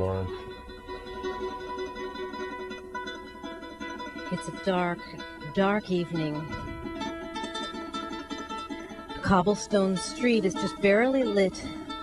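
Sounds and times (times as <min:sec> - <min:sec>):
solo harp playing: 0:00.0 - 0:12.0.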